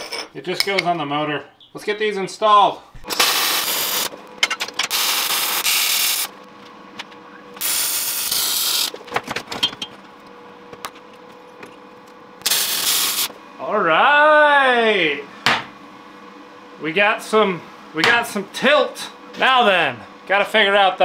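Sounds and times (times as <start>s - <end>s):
welder arc crackle: 3.0s - 4.2s, 4.9s - 6.4s, 7.6s - 9.0s, 12.4s - 13.3s.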